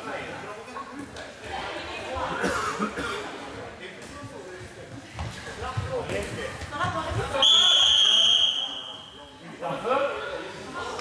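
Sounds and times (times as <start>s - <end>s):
referee's whistle blast: 7.4s - 9.1s.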